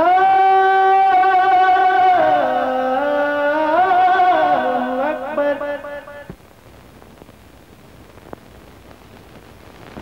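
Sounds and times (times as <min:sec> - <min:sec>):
person singing long held note: 0:00.0 - 0:06.3.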